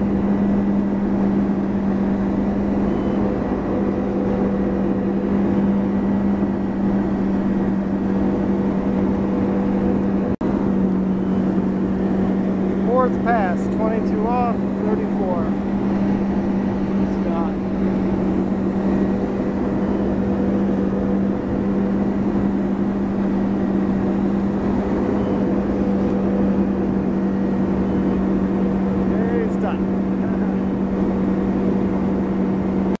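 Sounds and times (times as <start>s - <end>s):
boat engine running: 0.0s - 33.0s
wind: 0.0s - 33.0s.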